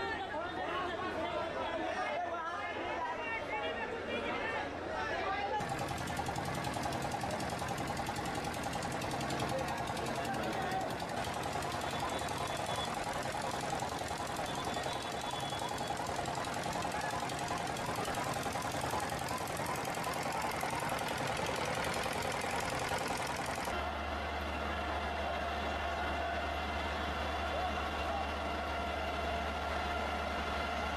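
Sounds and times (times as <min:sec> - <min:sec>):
crowd voices: 0:00.0 - 0:30.9
engine running with rapid knocking: 0:05.6 - 0:25.1.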